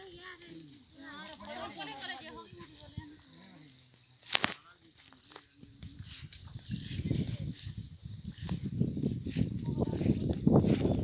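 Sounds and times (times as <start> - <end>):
faint voices talking: 0.0 - 11.0
loud crackle: 4.2 - 5.5.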